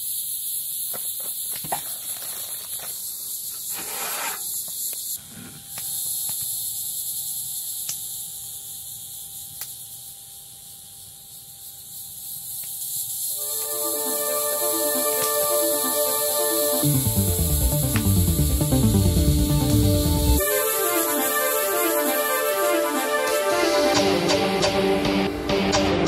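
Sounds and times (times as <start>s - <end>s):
crickets chirring: 0.0s - 24.2s
campfire crackling: 12.3s - 22.3s
music with sustained tones: 13.4s - 26.0s.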